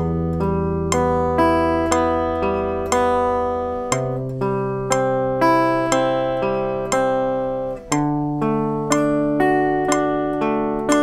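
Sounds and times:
guitar picking arpeggio: 0:00.0 - 0:11.0.

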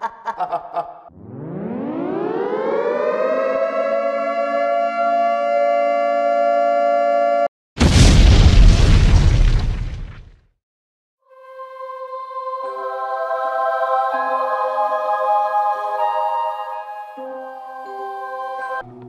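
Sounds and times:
air-raid siren wailing: 0:01.1 - 0:07.5
loud explosion with rumble: 0:07.8 - 0:10.4.

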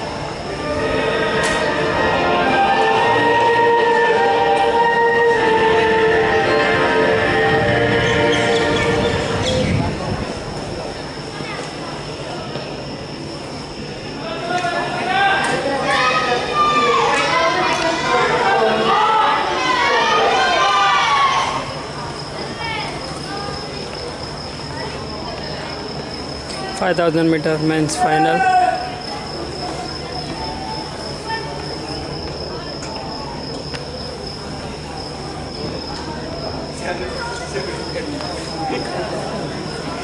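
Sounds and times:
high-pitched whine: 0:00.0 - 0:14.4
loud voices from stands: 0:00.0 - 0:40.0
stadium background noise: 0:00.0 - 0:40.0.

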